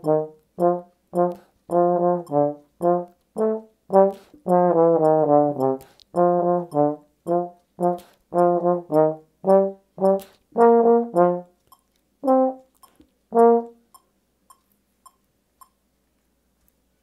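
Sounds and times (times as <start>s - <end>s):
click track ticking: 0.0s - 9.1s, 10.0s - 15.8s
trombone staccato notes: 0.0s - 11.6s, 12.2s - 12.7s, 13.3s - 13.9s.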